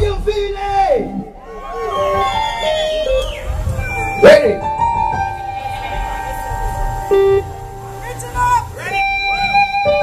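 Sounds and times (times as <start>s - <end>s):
live reggae band playing: 0.0s - 10.0s.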